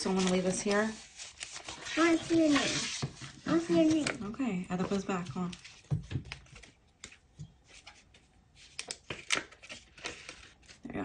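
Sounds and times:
paper bills rustling: 0.0 - 4.2.

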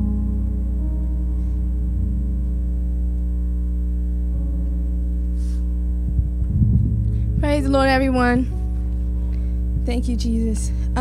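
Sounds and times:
loud mains hum: 0.0 - 11.0
soft keyboard chord: 0.0 - 11.0.

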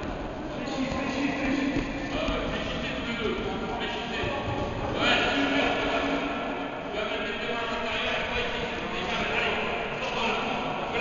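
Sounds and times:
voices in echoing hall: 0.0 - 11.0.

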